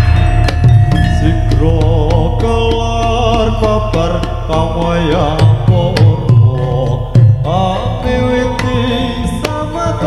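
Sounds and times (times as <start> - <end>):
metallophones and gongs: 0.0 - 10.0
person singing: 0.0 - 10.0.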